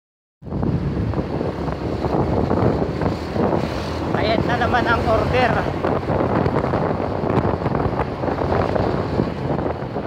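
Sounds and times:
vehicle rumbling on road: 0.4 - 10.0
wind buffeting microphone: 0.4 - 10.0.

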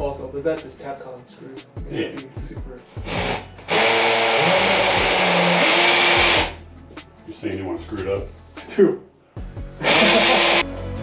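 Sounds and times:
power drill boring into concrete: 3.0 - 6.6, 9.8 - 10.6.

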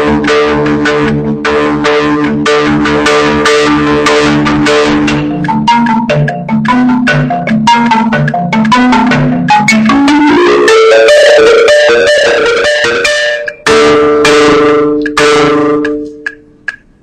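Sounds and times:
marimba played with mallets: 4.7 - 16.4.

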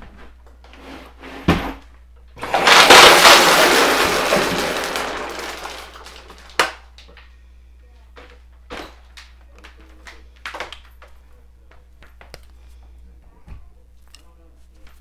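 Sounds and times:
loud clattering rush: 2.4 - 6.6.

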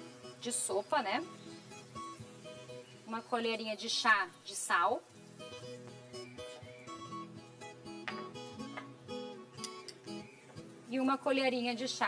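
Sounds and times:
acoustic guitar playing: 0.0 - 3.0, 5.1 - 10.9.

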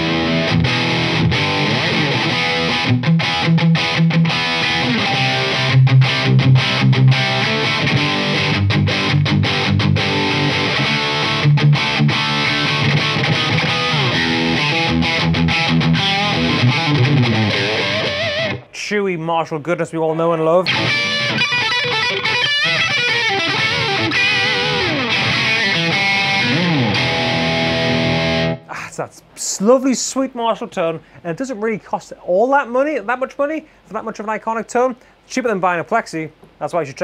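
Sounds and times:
distorted electric guitar riff: 0.0 - 18.8, 20.6 - 28.7.

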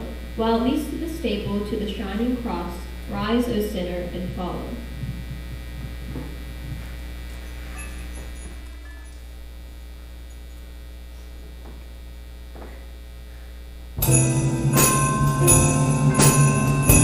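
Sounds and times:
electrical mains hum: 0.0 - 17.0
faint microphone knocks: 5.0 - 7.0.

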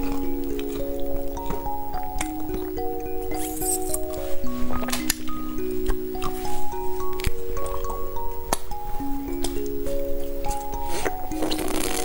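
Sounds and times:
background music with held notes: 0.0 - 12.0
wet mouth sucking sounds: 3.3 - 5.0, 10.9 - 12.0.

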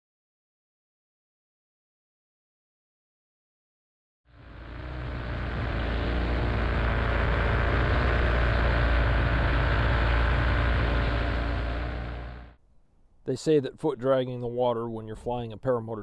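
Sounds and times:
paramotor engine drone: 4.3 - 12.6.

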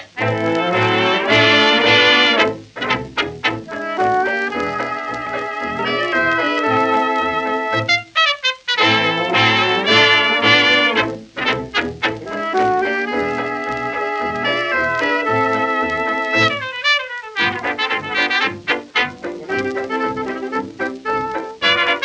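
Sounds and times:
jazz dance band playing: 0.0 - 22.0
trombone: 0.0 - 22.0
trumpet: 0.0 - 22.0.

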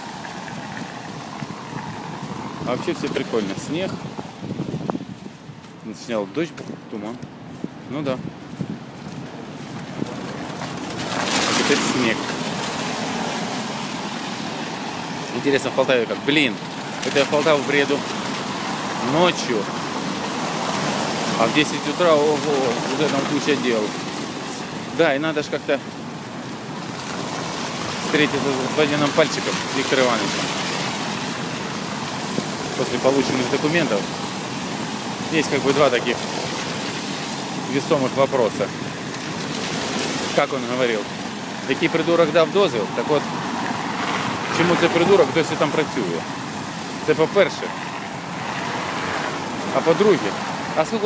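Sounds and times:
street noise: 0.0 - 51.0.

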